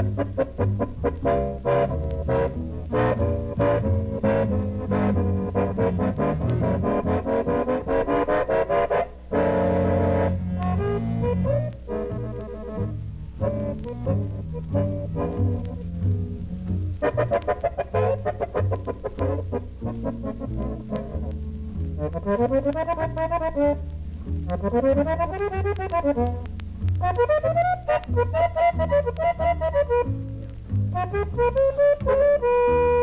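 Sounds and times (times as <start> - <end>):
accordion: 0.0 - 33.0
bass line: 0.0 - 33.0
guitar: 0.0 - 33.0
flute: 22.0 - 33.0.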